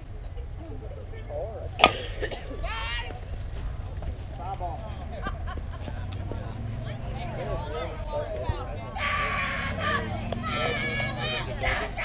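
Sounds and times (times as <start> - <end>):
background voices: 1.6 - 12.0.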